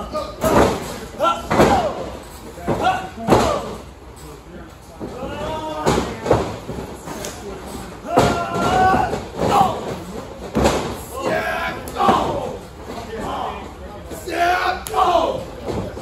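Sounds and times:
men shouting and grunting: 0:00.0 - 0:03.8, 0:08.0 - 0:10.1, 0:10.9 - 0:13.6, 0:14.2 - 0:15.5
bodies thudding on wrestling mat: 0:08.1 - 0:12.4.

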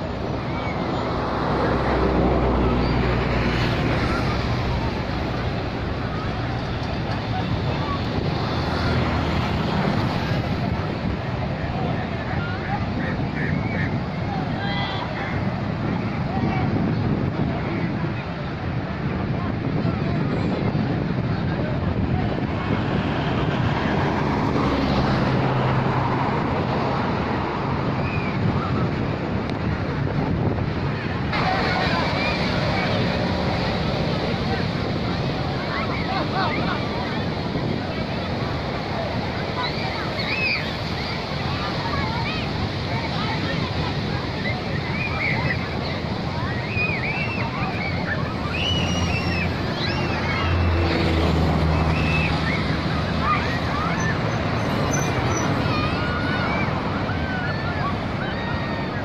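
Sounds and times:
low engine hum: 0:00.0 - 0:59.0
murmur of voices: 0:00.0 - 0:59.0
surf breaking on beach: 0:00.0 - 0:59.0
wind buffeting microphone: 0:00.0 - 0:59.0.

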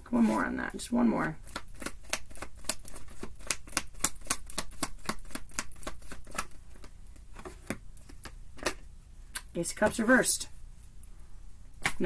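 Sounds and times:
cards being shuffled: 0:01.5 - 0:08.8.

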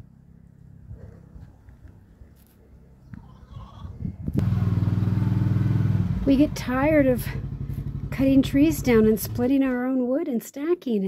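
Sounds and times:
small petrol engine running: 0:04.4 - 0:09.7.

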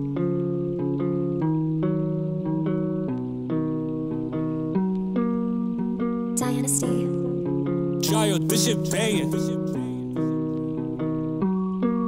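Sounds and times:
plucked guitar melody: 0:00.0 - 0:12.0.

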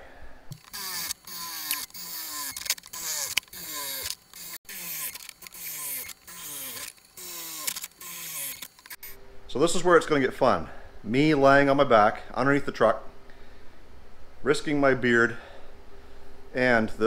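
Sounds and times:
cordless drill whining: 0:00.5 - 0:09.2.

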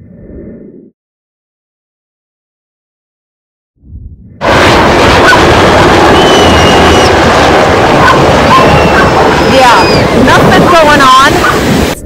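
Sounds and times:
helicopter flying low overhead: 0:04.4 - 0:12.0.

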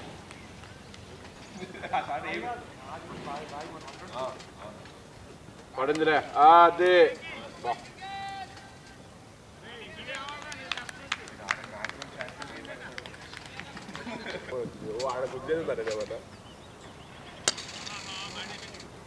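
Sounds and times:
distant players shouting: 0:05.7 - 0:13.0.

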